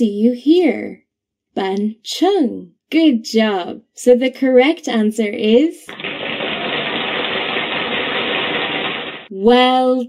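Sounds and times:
drumroll: 5.9s - 9.3s.

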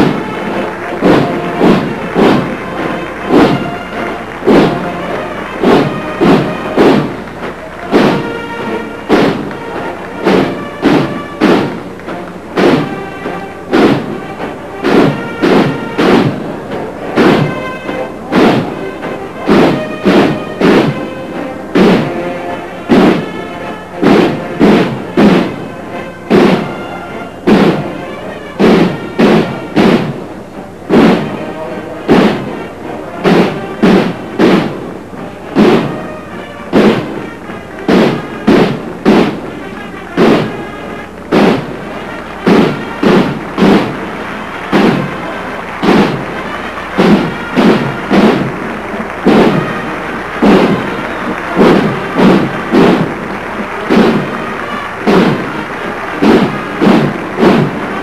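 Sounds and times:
heavy drum beat: 0.0s - 58.0s
military band playing a march: 0.0s - 58.0s.

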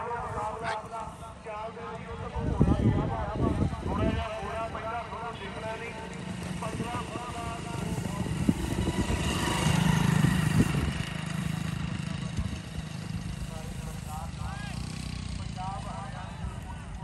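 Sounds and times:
men calling out: 0.0s - 1.2s
motorcycle engine running: 0.0s - 17.0s.

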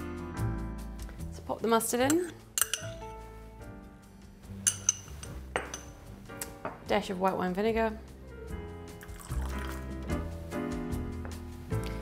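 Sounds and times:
background music: 0.0s - 12.0s
metal spoon clinking on glass bowl: 2.0s - 3.1s, 4.7s - 6.0s.

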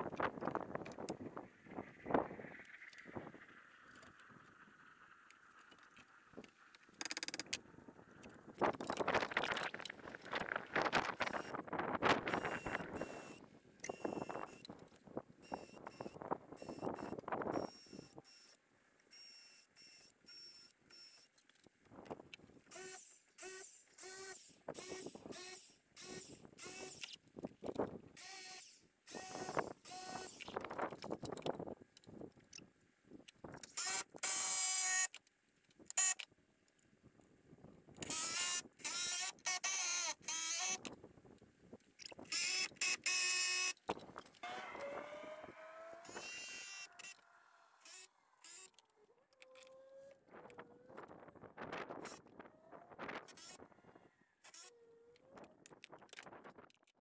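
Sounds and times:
power drill driving screws: 12.4s - 14.6s, 22.7s - 27.2s, 28.2s - 30.5s, 33.6s - 35.2s, 35.9s - 36.2s, 38.0s - 40.9s, 42.2s - 43.8s, 44.4s - 47.2s, 47.8s - 48.8s, 53.2s - 53.6s, 54.4s - 54.7s.

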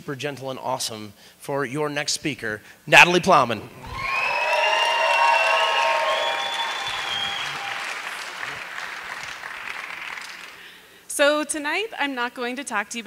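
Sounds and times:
audience applauding and cheering: 3.8s - 10.8s.

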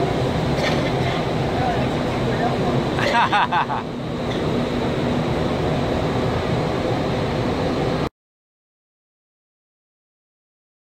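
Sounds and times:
loud rush of air: 0.0s - 8.1s.

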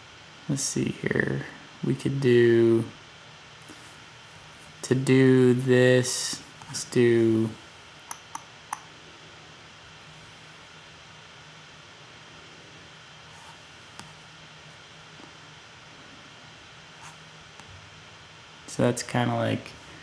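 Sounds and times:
faint room hiss and hum: 0.0s - 20.0s.

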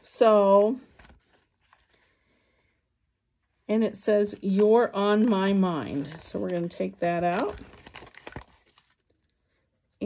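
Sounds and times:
cardstock rustling: 0.3s - 2.3s, 3.9s - 9.4s.

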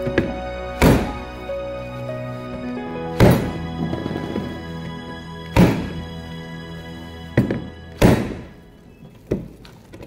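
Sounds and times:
dough slapping thuds: 0.0s - 1.3s, 3.2s - 3.6s, 5.5s - 6.0s, 7.4s - 8.5s
background music: 0.0s - 10.0s.

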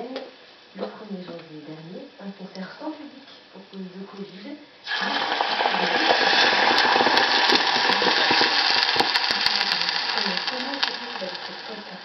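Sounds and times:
cream sizzling in hot oil: 4.8s - 12.0s.

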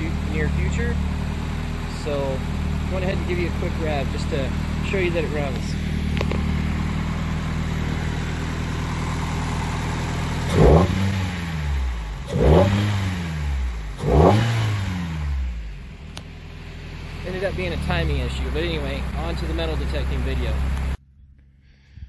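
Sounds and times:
car engine idling and revving: 0.0s - 21.1s.

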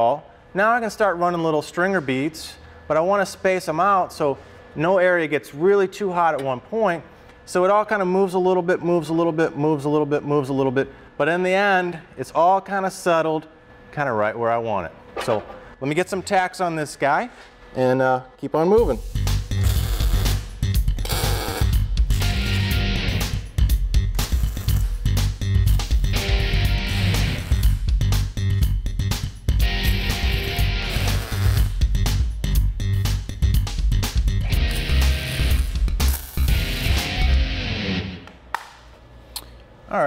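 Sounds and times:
guitar music with steady beat: 21.7s - 31.1s, 32.8s - 38.2s
welder arc crackling: 24.2s - 25.0s, 34.7s - 37.1s.

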